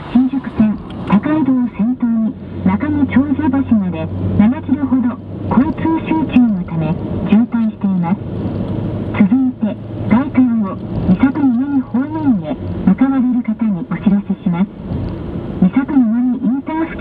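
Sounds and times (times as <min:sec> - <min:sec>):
voice over car radio: 0:00.0 - 0:08.2, 0:09.1 - 0:14.8, 0:15.6 - 0:17.0
low hum of moving car: 0:00.0 - 0:17.0.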